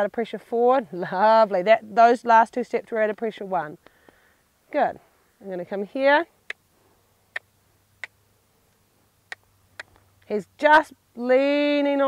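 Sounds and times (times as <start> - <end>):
tongue clicks: 7.3 - 8.2, 9.3 - 10.1.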